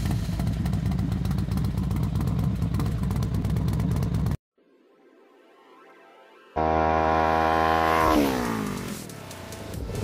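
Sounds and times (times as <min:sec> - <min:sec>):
motorcycle engine revving past: 0:06.6 - 0:09.2.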